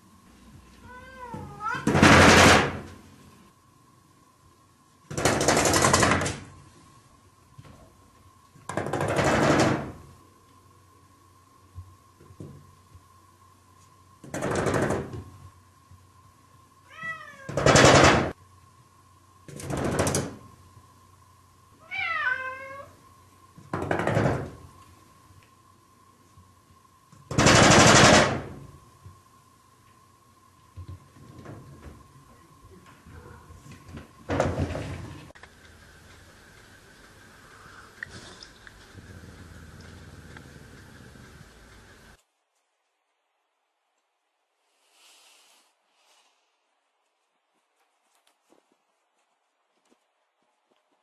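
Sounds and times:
cat meowing: 0.8s - 2.0s, 16.9s - 17.6s, 21.8s - 23.0s
rapid rattling knocks: 5.1s - 6.5s, 8.6s - 10.0s, 14.2s - 15.3s, 19.5s - 20.4s, 23.7s - 24.6s.

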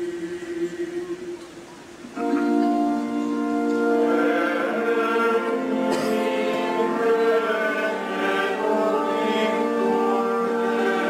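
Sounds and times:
choir singing sacred music: 0.0s - 1.5s, 2.2s - 11.0s.

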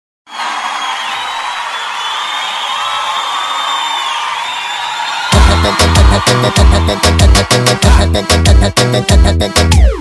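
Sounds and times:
crowd cheering and screaming: 0.3s - 7.6s.

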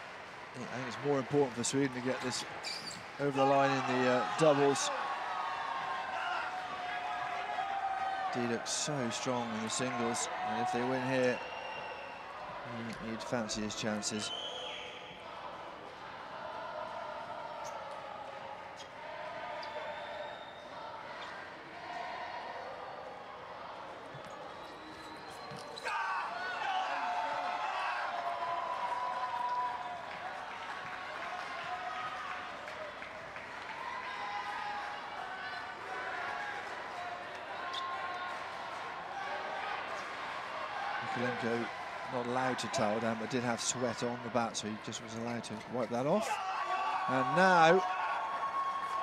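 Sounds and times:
crowd voices in arena: 0.0s - 49.0s.

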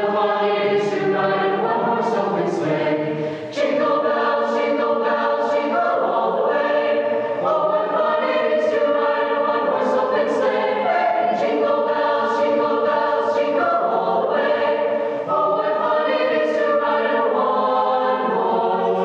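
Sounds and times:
mixed choir singing chords: 0.0s - 19.0s.

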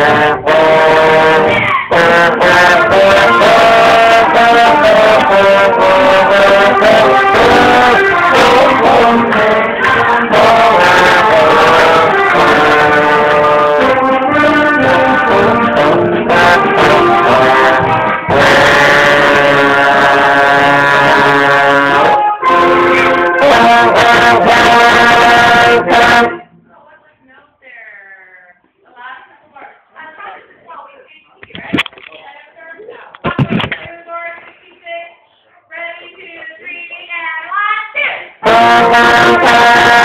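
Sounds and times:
concert band playing: 0.0s - 26.4s, 38.4s - 40.0s
slide trombone playing: 0.0s - 26.5s, 38.4s - 40.0s.

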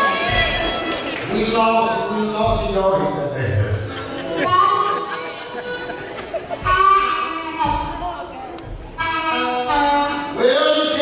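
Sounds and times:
low thumps: 0.1s - 4.7s, 5.6s - 10.4s
blues harmonica held notes: 1.8s - 11.0s.

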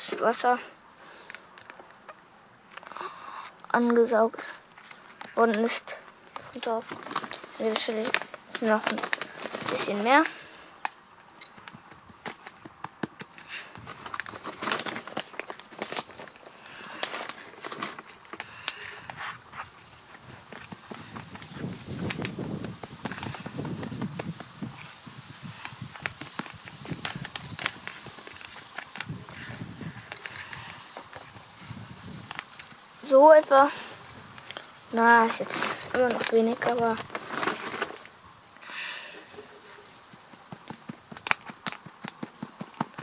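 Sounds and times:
clicks and crackles: 1.2s - 24.9s, 25.5s - 32.9s, 34.3s - 38.7s, 40.6s - 43.0s
soft rustling: 3.7s - 10.8s, 11.4s - 38.2s.

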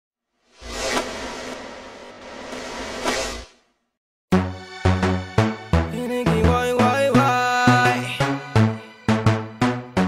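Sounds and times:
noisy whoosh: 0.4s - 3.8s.

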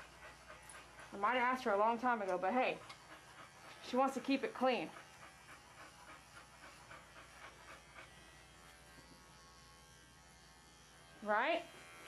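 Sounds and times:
pet clipper buzzing: 0.0s - 12.0s.

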